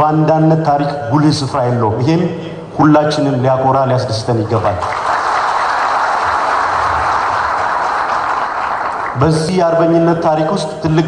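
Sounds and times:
person giving speech: 0.0 - 4.8
audience applauding: 4.8 - 9.4.

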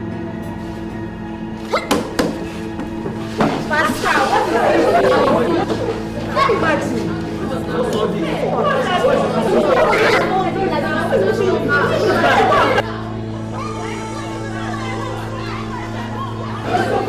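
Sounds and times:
background music: 0.0 - 17.0
voices arguing and shouting: 3.4 - 17.0.

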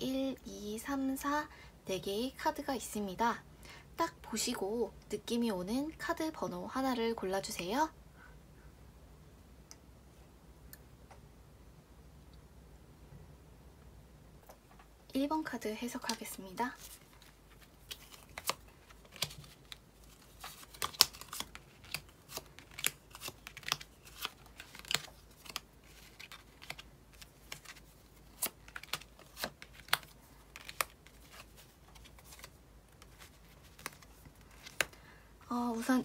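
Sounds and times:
cards clicking and snapping: 16.1 - 35.0.

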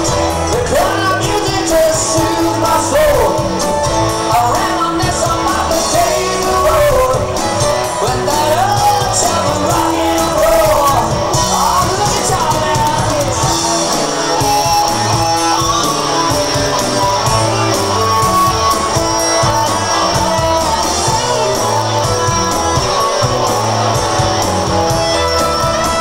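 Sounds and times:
bass guitar: 0.0 - 26.0
electric guitar: 0.0 - 26.0
steady drum beat: 0.0 - 26.0.

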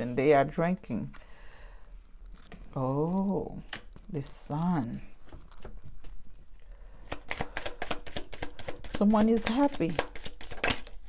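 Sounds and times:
cards being shuffled: 2.2 - 11.0.

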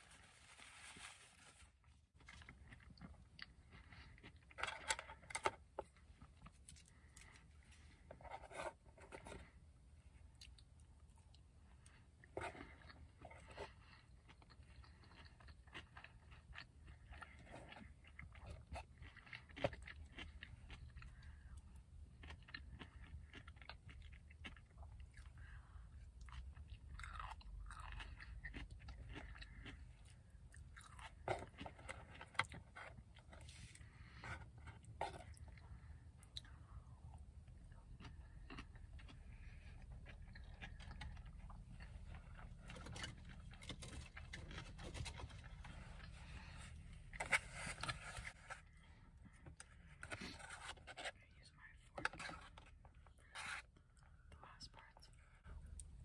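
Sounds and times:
person chewing food: 2.1 - 54.3.

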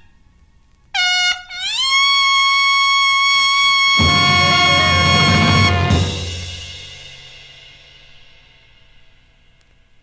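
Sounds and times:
trumpet sliding note: 1.0 - 6.8
band playing: 3.3 - 7.4.

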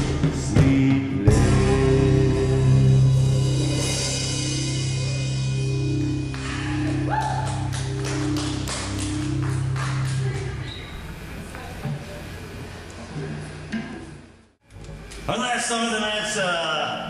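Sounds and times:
drum and cymbal hits: 0.0 - 10.4
electric guitars and bass chord: 0.0 - 10.7.

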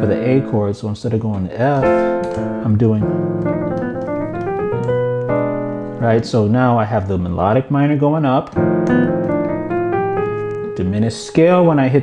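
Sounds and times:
piano playing: 0.0 - 12.0.

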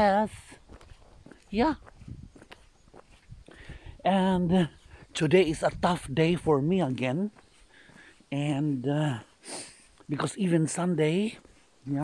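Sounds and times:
footsteps on paved road: 0.0 - 12.0.

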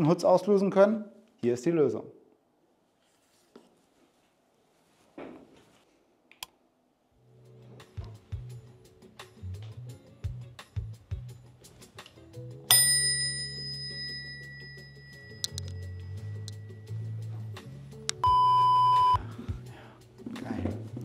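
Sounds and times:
background music: 7.2 - 21.0
bicycle bell ring: 12.7 - 17.2
steady electronic beep: 18.2 - 19.2.

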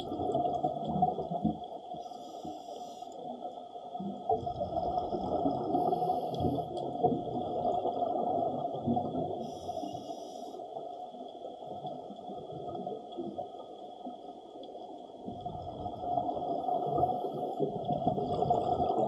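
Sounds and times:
water rushing and gurgling: 0.0 - 19.0.

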